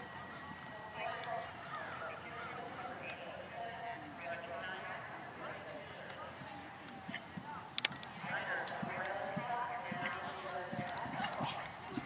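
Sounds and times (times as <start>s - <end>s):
voices talking: 0.0s - 12.0s
horse hoofbeats on grass: 8.2s - 12.0s.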